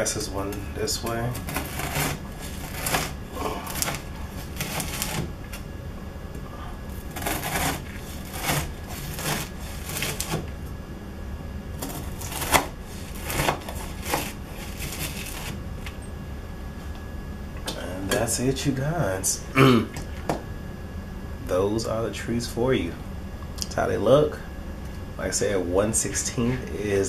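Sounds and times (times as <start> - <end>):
knife cutting crunchy cereal treats: 1.0 - 5.3, 6.9 - 10.4, 11.8 - 15.6.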